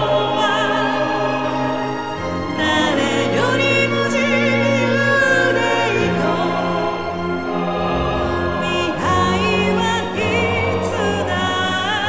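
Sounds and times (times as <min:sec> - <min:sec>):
choir singing: 0:00.0 - 0:12.0
orchestra chords: 0:00.0 - 0:12.0
woman singing with vibrato: 0:08.6 - 0:12.0.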